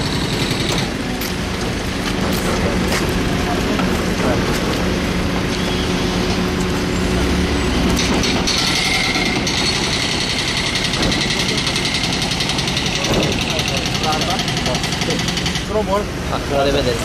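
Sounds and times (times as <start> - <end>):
traffic hiss on wet road: 0.0 - 8.1
voices: 12.7 - 17.0.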